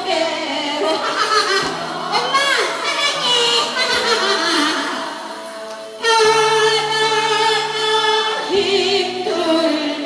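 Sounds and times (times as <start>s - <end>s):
woman singing into a microphone: 0.0s - 5.2s, 6.0s - 10.0s.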